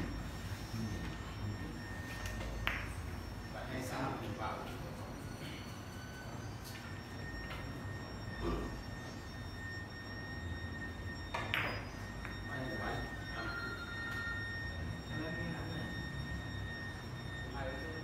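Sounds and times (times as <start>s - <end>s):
faint steady high tone: 0.0s - 18.0s.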